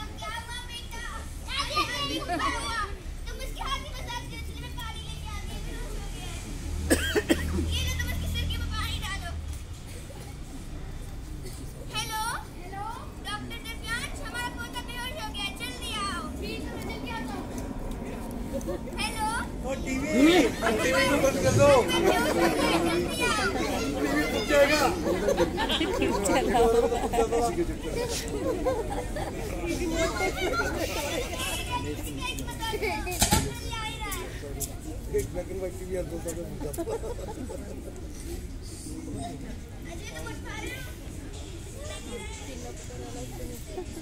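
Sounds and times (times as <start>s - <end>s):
children's voices: 0.0s - 34.7s, 39.0s - 44.0s
steady low rumble: 14.5s - 22.6s.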